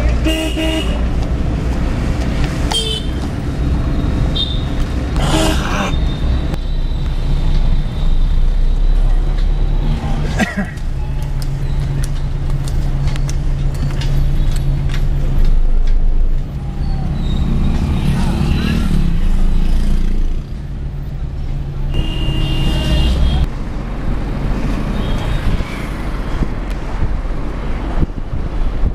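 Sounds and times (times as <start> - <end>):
car engine hum and road noise: 0.0 - 28.9
passing traffic: 0.0 - 28.9
vehicle horn: 21.9 - 23.5.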